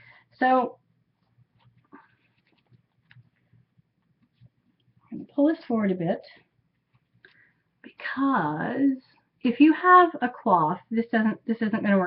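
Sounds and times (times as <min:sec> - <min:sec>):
faint rustles: 0:01.3 - 0:04.8.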